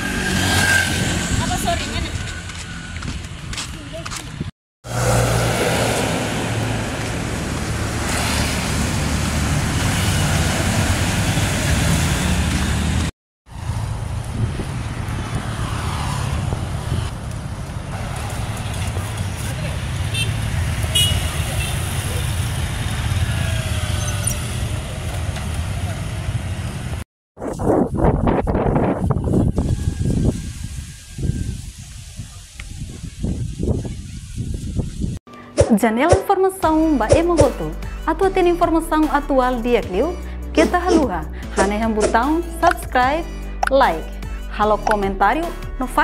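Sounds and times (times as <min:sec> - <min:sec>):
motorbike and car engines passing: 0:00.0 - 0:27.0
road noise: 0:00.0 - 0:46.0.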